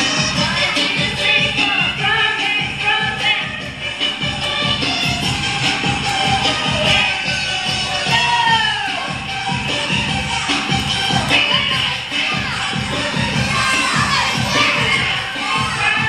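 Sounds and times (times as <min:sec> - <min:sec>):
crowd shouting and cheering: 0:00.0 - 0:16.0
dance music with steady beat: 0:00.0 - 0:16.0.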